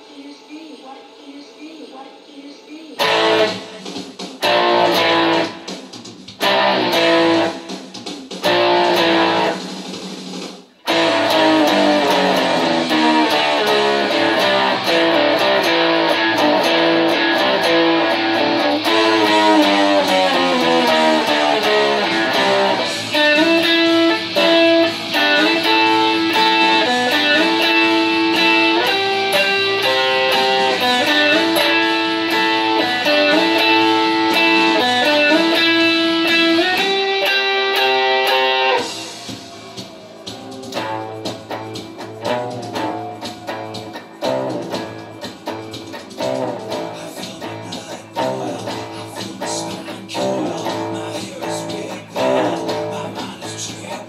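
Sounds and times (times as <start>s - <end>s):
electric guitar rock riff: 3.0s - 54.0s.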